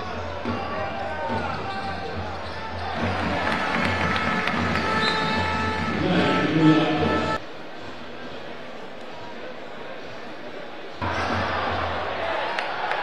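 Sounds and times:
arena music: 0.0s - 7.4s
crowd voices: 0.0s - 13.0s.

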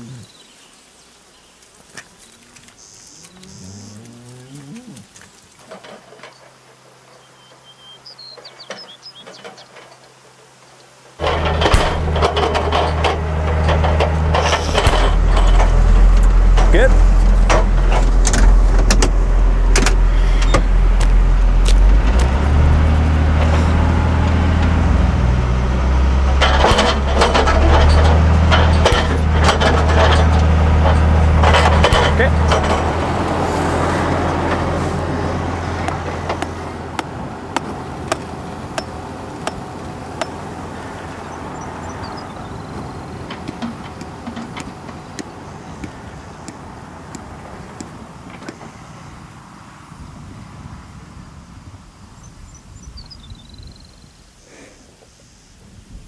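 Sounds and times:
post driver pounding fence posts: 11.2s - 25.0s, 25.6s - 42.1s, 42.7s - 48.7s
tractor engine running: 11.2s - 48.8s.

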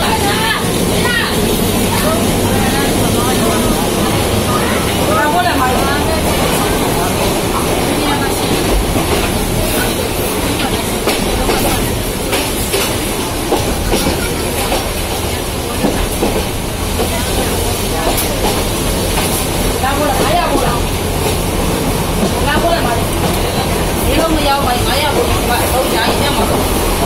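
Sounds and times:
train carriage rumble and rattle: 0.0s - 27.0s.

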